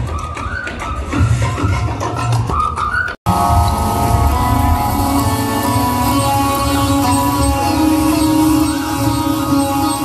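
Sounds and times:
loud amplified live music: 0:00.0 - 0:10.0.

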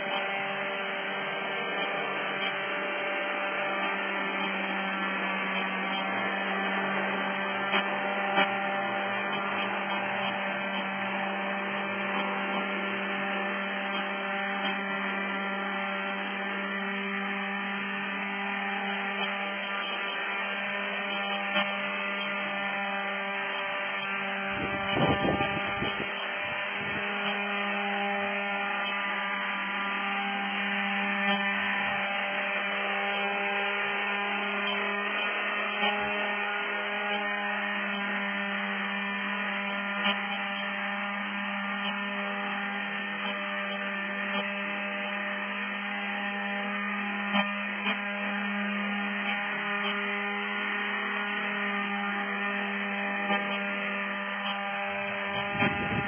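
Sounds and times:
model helicopter hovering: 0:00.0 - 0:56.0.

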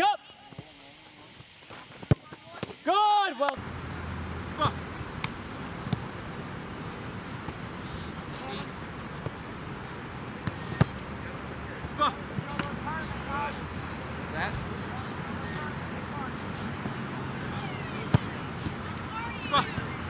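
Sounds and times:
outdoor background noise: 0:00.0 - 0:20.0
distant voices calling: 0:03.6 - 0:20.0.

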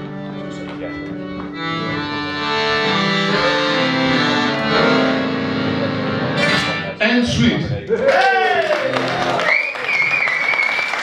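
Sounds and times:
audience applauding: 0:07.8 - 0:11.0
long high whistle: 0:09.4 - 0:11.0.

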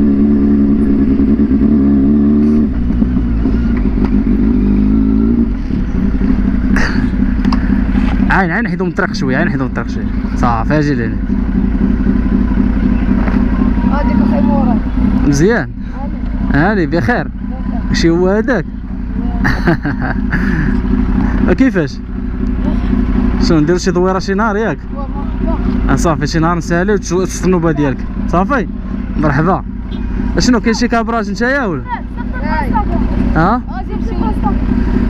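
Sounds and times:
motorcycle engine idling: 0:00.0 - 0:35.0
people talking: 0:13.6 - 0:18.6, 0:22.6 - 0:29.6, 0:30.4 - 0:34.7.

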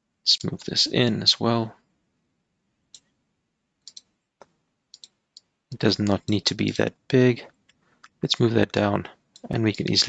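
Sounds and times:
computer mouse clicking: 0:03.8 - 0:06.8.

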